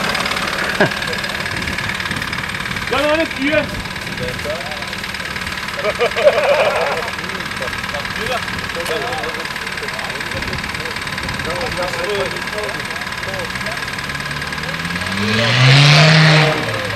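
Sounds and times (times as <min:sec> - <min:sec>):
background chatter: 0:00.0 - 0:16.9
engine idling and revving: 0:00.0 - 0:16.9.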